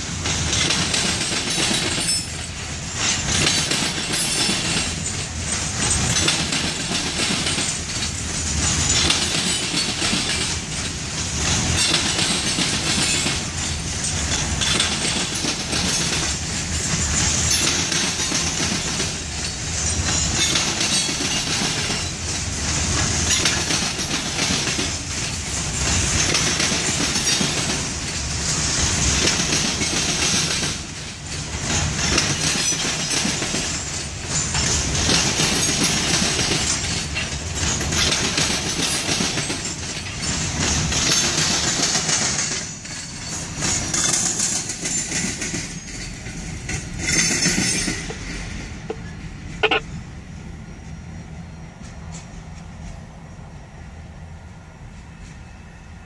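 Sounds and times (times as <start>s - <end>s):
freight train rolling past: 0.0s - 56.0s
steel wheels hissing on rails: 0.0s - 56.0s.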